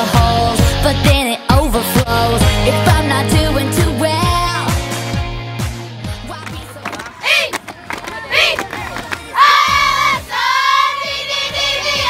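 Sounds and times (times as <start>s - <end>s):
pop song: 0.0s - 7.4s
girls shouting and cheering: 6.3s - 12.0s.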